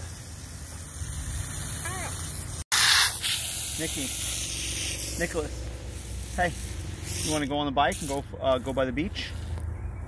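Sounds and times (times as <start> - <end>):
hose nozzle spraying water: 0.0 - 9.6.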